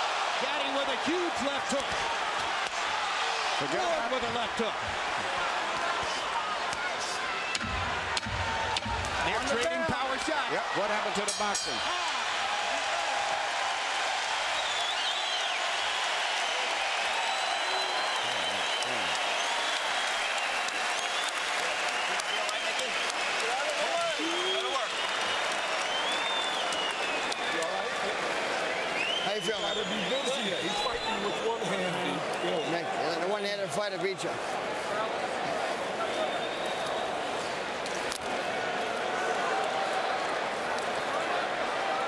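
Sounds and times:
shouts: 0:00.0 - 0:14.6, 0:22.2 - 0:25.0
crowd applauding and cheering: 0:00.0 - 0:42.0.

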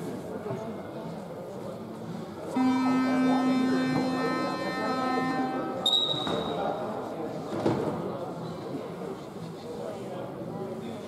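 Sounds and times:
scoreboard horn buzzing blast: 0:02.5 - 0:06.2
short high whistle blast: 0:05.8 - 0:06.7.

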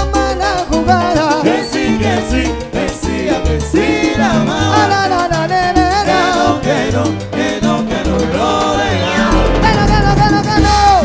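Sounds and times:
salsa band playing: 0:00.0 - 0:11.0.

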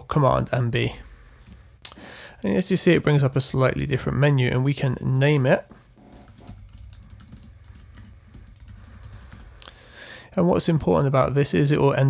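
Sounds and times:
keyboard typing: 0:05.1 - 0:09.8.

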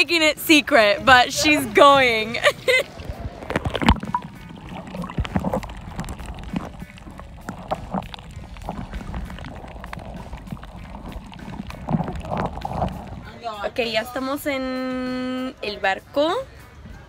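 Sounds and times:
underwater rumble: 0:02.6 - 0:14.1
underwater clicks and knocks: 0:03.0 - 0:13.3.

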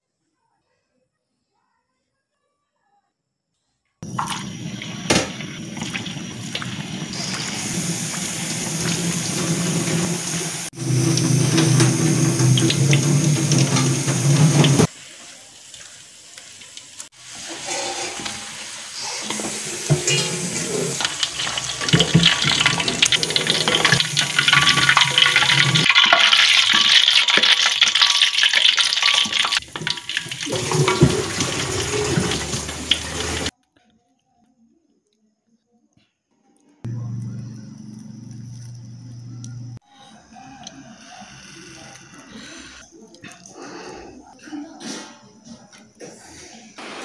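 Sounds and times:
oil sizzling: 0:04.0 - 0:33.5.

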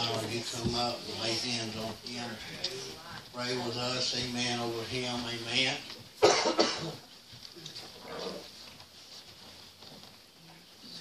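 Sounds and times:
person coughing: 0:06.2 - 0:07.1.

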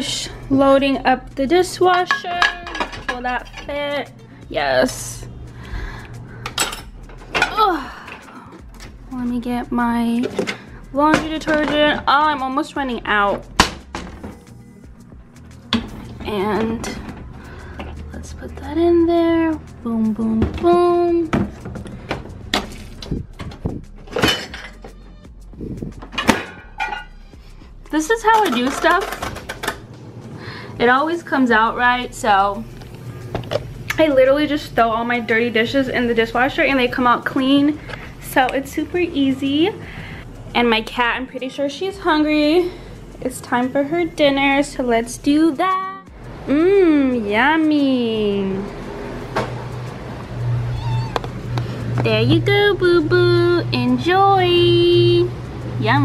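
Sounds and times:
cat meowing: 0:50.5 - 0:51.3.

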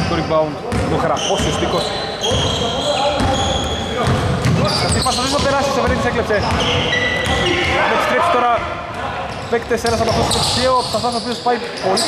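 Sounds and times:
high squeak: 0:01.1 - 0:04.0, 0:04.6 - 0:05.4, 0:06.4 - 0:07.5, 0:09.9 - 0:12.0.

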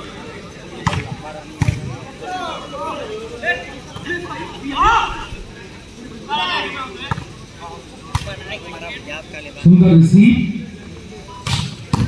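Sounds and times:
loud shout: 0:04.6 - 0:05.5.

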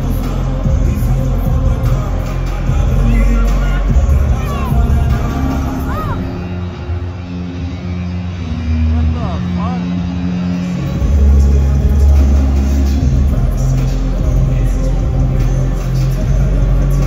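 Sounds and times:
loud hip-hop music: 0:00.0 - 0:17.0.

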